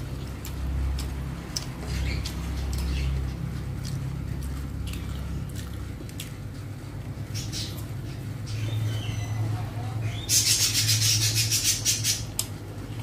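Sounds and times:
wet chewing smacks: 0:00.0 - 0:06.7.

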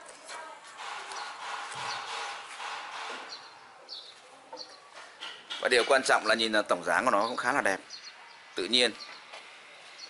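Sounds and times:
birds chirping: 0:00.4 - 0:10.0.

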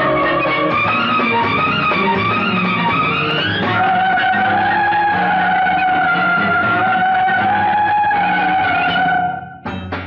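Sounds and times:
bass and rhythm accompaniment: 0:00.0 - 0:10.0.

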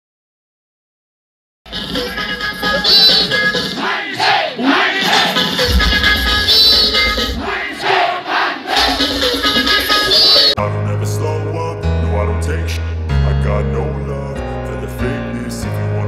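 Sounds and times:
loud dance music: 0:01.7 - 0:10.6
crowd shouting and cheering: 0:02.1 - 0:10.6
heavy bass: 0:05.6 - 0:08.0.

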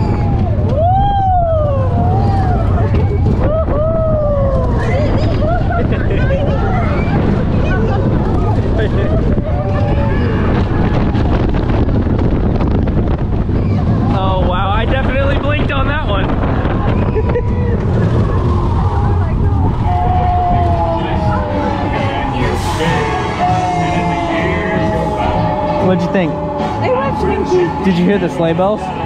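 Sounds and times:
roller coaster train rumble: 0:00.0 - 0:29.0
wind buffeting microphone: 0:00.0 - 0:29.0.

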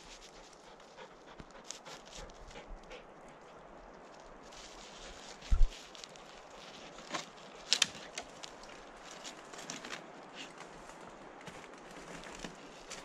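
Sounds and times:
dog panting: 0:00.0 - 0:03.6.

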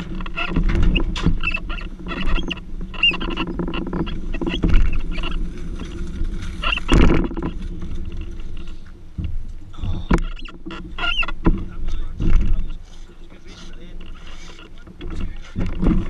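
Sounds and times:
chassis clattering and knocking: 0:00.0 - 0:12.8, 0:13.8 - 0:16.0.

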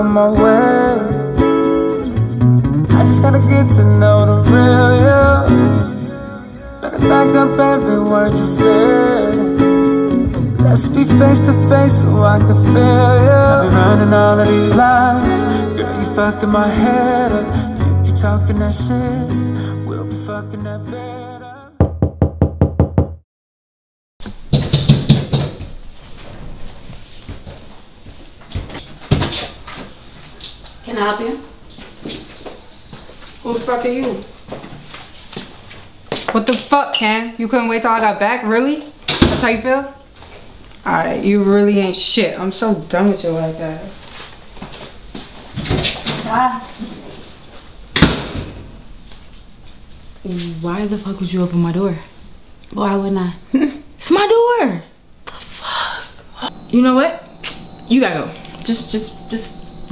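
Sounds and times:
r and b song: 0:00.0 - 0:22.4, 0:56.4 - 0:59.9
rapid knocking on a door: 0:21.8 - 0:23.2, 0:24.5 - 0:25.7
door banging: 0:24.3 - 0:25.8, 0:48.0 - 0:48.9.

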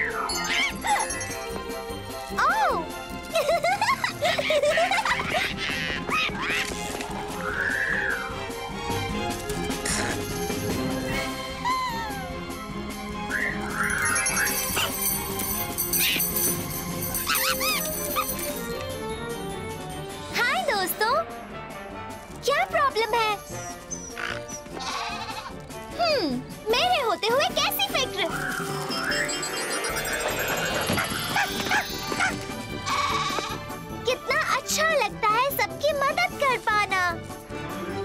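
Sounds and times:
background music: 0:00.0 - 0:38.0
cartoon goat bleating: 0:24.2 - 0:25.5, 0:32.9 - 0:33.6.

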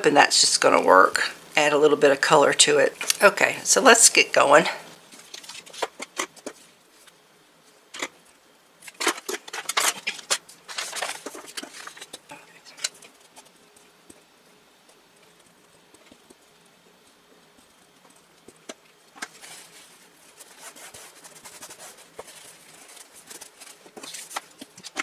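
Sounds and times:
paper rustling: 0:05.0 - 0:07.2, 0:08.8 - 0:13.6, 0:19.1 - 0:25.0.

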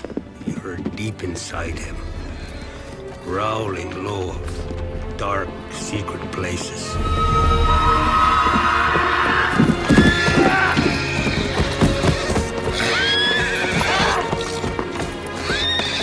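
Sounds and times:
horse hoofbeats galloping: 0:00.0 - 0:06.7, 0:07.7 - 0:16.0
film score music: 0:00.0 - 0:16.0
horse whinnying: 0:07.0 - 0:16.0.

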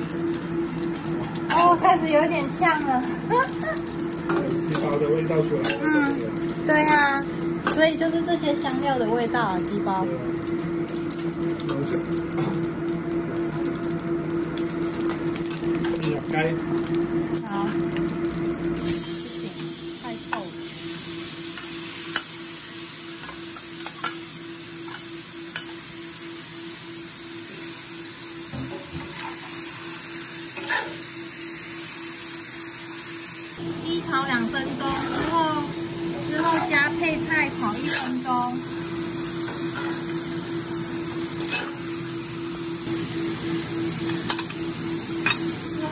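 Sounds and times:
chicken sizzling in hot pan: 0:00.0 - 0:45.9
metal spatula stirring in wok: 0:30.6 - 0:31.0, 0:37.7 - 0:38.2, 0:41.4 - 0:41.8
spatula scraping and clicking: 0:41.4 - 0:41.8.

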